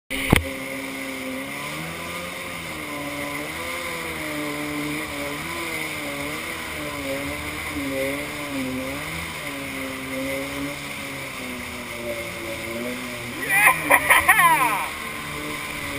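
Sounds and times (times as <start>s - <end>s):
jet ski engine running: 0.1s - 15.9s.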